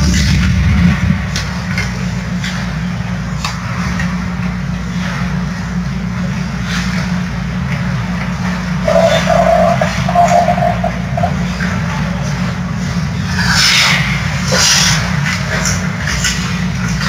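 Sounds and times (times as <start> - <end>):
arena low hum: 8.6 - 12.6
mid-pitched held tone: 8.8 - 11.6.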